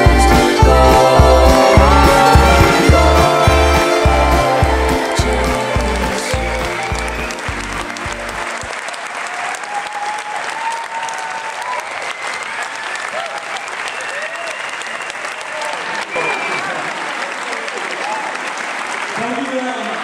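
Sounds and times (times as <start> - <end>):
audience applauding: 0.0 - 20.0
people cheering: 0.0 - 20.0.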